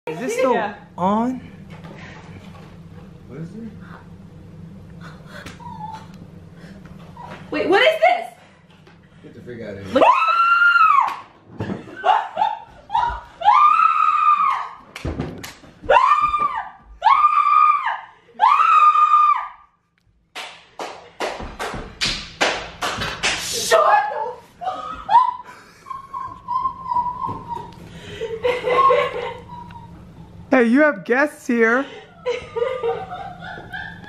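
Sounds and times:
woman screaming: 10.0 - 11.2, 12.9 - 14.8, 15.9 - 19.7, 23.7 - 25.4.

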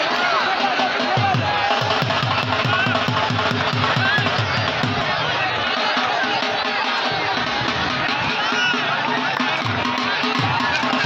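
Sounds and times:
dhol drum beaten fast: 0.0 - 11.0
large crowd noise: 0.0 - 11.0.

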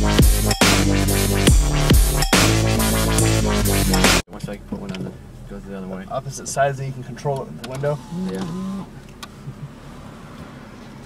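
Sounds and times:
car cabin hum: 4.3 - 11.0.

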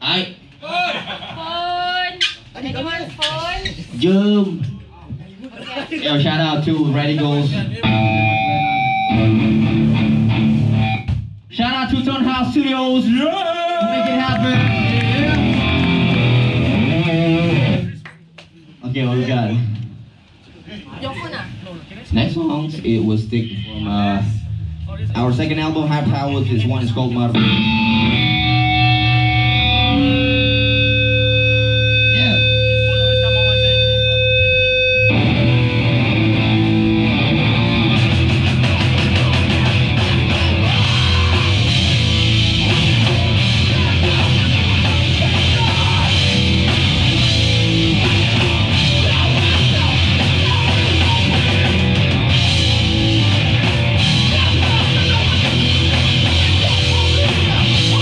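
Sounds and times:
bass guitar: 7.2 - 11.6, 14.2 - 18.0, 23.7 - 58.0
distorted electric guitar chords: 7.8 - 11.4, 14.3 - 18.0, 27.2 - 58.0
punk band playing: 7.8 - 11.6, 13.9 - 18.0, 27.3 - 58.0.

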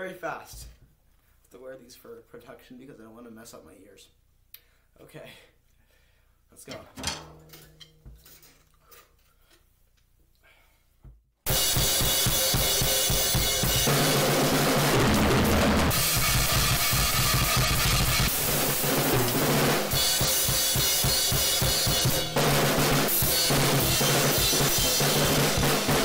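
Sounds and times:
acoustic drum kit playing: 11.5 - 26.0.

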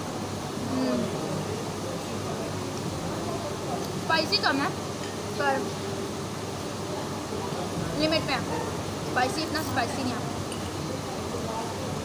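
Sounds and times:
ventilation hum and hiss: 0.0 - 12.0.

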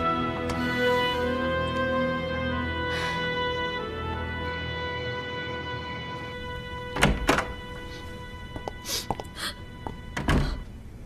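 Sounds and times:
wooden door opening: 6.9 - 7.8, 10.1 - 10.6
door shutting with a thump: 7.0 - 7.6, 10.2 - 10.6
person sniffing: 8.8 - 9.6.

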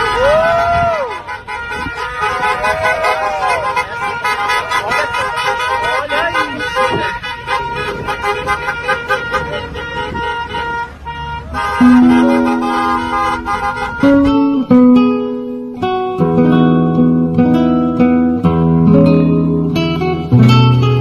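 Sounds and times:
crowd shouting and cheering: 0.0 - 7.7
car horns honking: 0.0 - 16.0
person whooping: 0.2 - 1.2.

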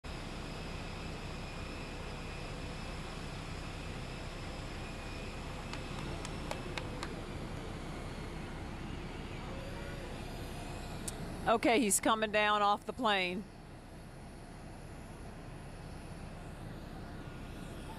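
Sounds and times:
jet turbine whine and rumble: 0.1 - 17.9.

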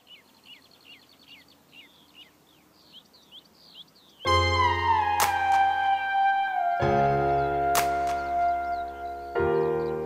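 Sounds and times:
background hiss: 0.0 - 10.0
bird chirping: 0.0 - 10.0.

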